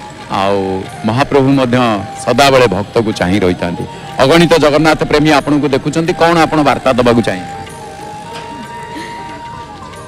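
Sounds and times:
faint music with long held note: 0.0s - 10.0s.

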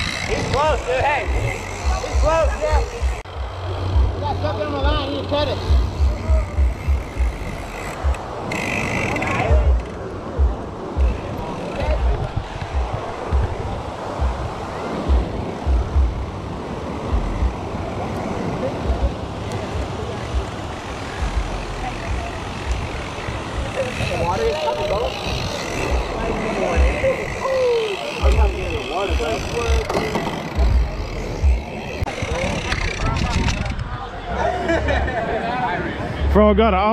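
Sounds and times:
wind buffeting microphone: 0.0s - 34.4s
faint voices: 0.0s - 36.9s
surf washing: 7.9s - 36.2s.

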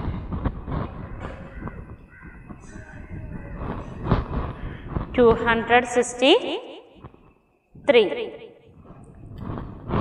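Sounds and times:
wind rumbling on microphone: 0.0s - 5.9s, 8.7s - 10.0s
faint bird calls: 0.8s - 5.1s.

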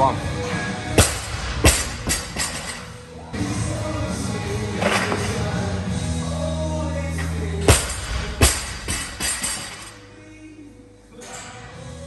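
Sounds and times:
loud gym music: 0.0s - 12.0s
barbell dropped on platform: 1.0s - 2.9s, 7.7s - 9.9s.

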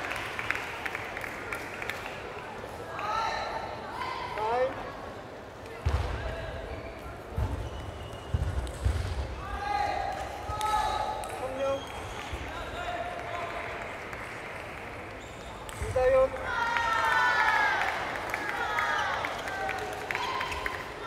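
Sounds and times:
voices calling out in a hall: 0.0s - 8.6s, 9.2s - 21.0s.

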